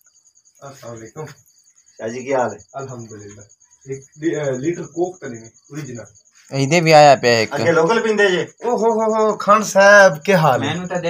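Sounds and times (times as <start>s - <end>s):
cricket chirping: 0.0s - 11.0s
men talking: 0.6s - 1.4s, 2.0s - 11.0s.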